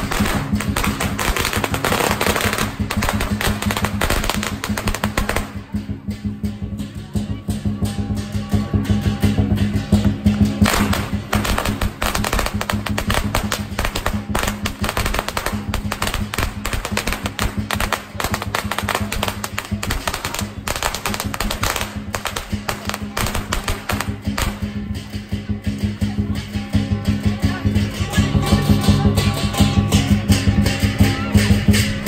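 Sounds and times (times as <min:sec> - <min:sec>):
firecrackers popping: 0:00.0 - 0:06.8, 0:09.2 - 0:26.4
music playing: 0:00.0 - 0:32.0.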